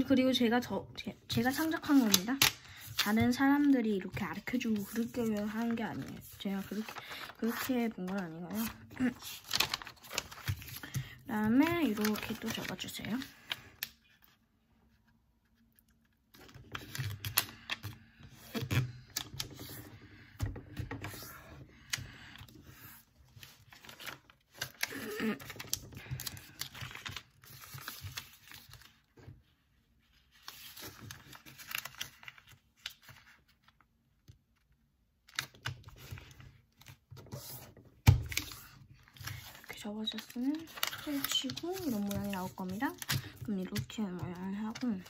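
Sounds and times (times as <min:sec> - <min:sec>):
paper rustling and crinkling: 0:01.3 - 0:33.8, 0:35.3 - 0:45.0.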